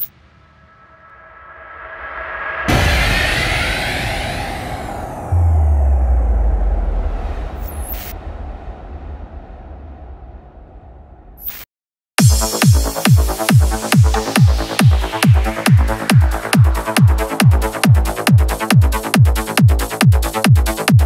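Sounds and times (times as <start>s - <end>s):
cinematic swell and hit: 0.1s - 11.4s
deep low boom: 0.2s - 11.4s.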